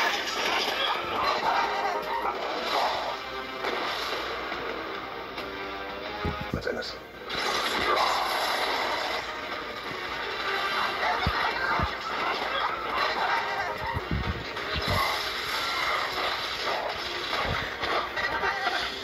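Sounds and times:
dramatic film music: 0.0 - 19.0.

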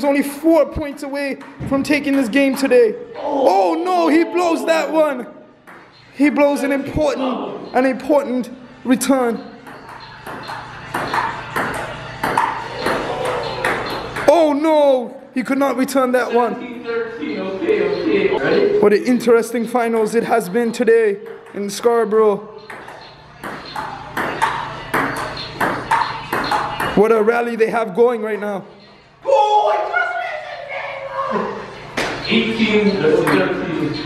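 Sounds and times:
ping pong ball clicking: 9.6 - 14.3, 22.6 - 27.0.

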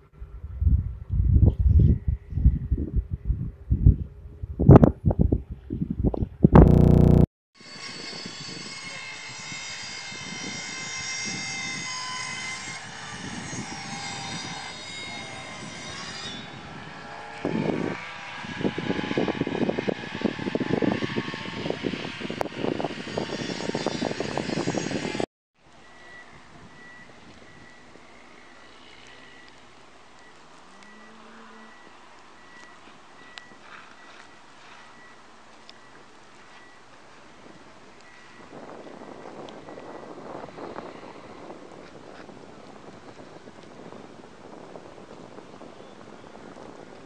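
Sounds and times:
gusty crackling: 6.0 - 7.3
engine drone with high whine: 6.5 - 7.3
faint repeating high tone: 6.6 - 7.3.

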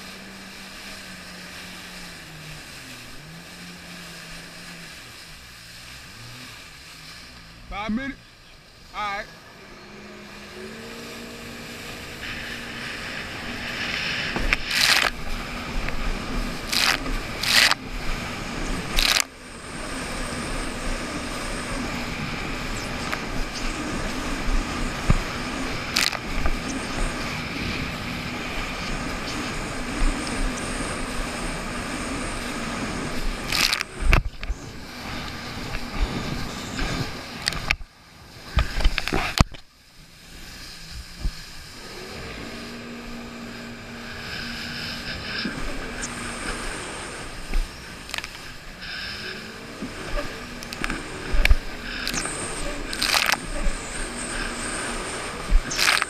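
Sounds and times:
jet ski engine whining drone: 0.0 - 56.0
water splashing: 0.0 - 56.0.

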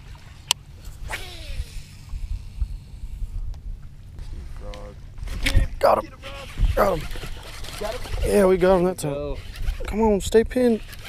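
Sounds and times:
wind rumble on microphone: 0.0 - 11.0
reel spool whirring: 0.8 - 3.2, 5.8 - 11.0
fishing reel click: 6.8 - 11.0.

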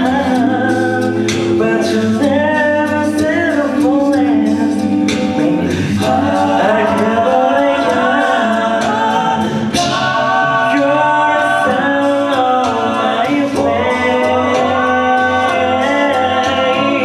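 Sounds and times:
male voices singing in harmony: 0.0 - 17.0.

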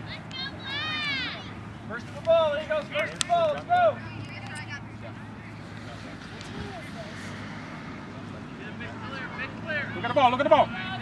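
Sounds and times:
distant voices and shouts: 0.0 - 11.0.

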